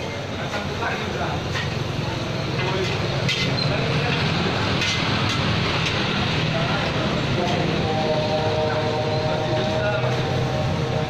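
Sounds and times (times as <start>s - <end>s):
rice frying in a wok: 0.2s - 7.8s.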